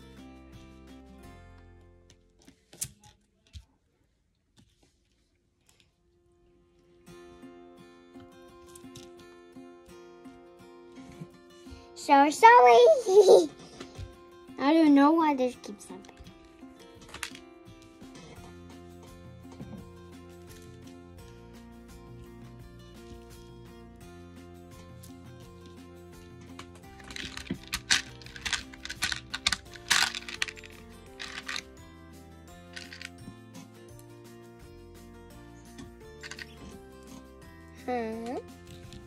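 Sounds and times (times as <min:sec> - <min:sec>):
music with sustained notes: 0:06.8 - 0:39.0
beads clicking and clattering: 0:17.0 - 0:17.4, 0:26.5 - 0:31.8, 0:32.7 - 0:33.2, 0:36.2 - 0:36.7.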